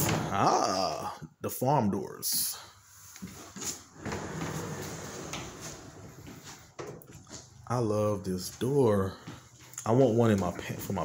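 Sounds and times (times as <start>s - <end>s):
sliding barn door rolling open: 3.9s - 7.0s.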